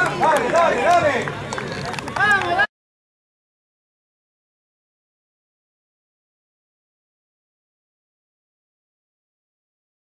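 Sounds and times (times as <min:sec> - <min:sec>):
people shouting and cheering: 0:00.0 - 0:02.7.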